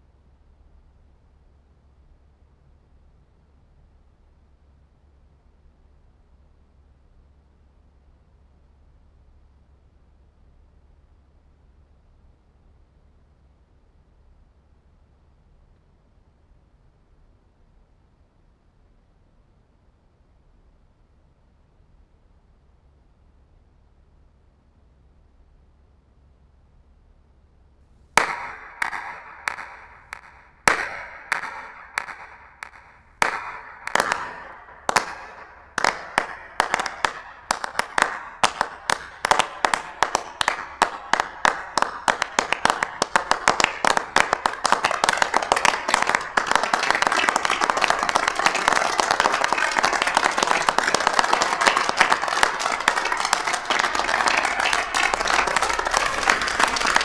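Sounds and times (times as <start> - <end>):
audience applause: 28.2 - 57.0
slow echoing hand claps: 28.2 - 57.0.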